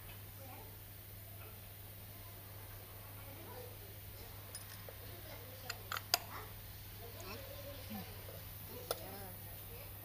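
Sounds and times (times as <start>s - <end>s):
light metallic clicks and taps: 5.6s - 6.3s.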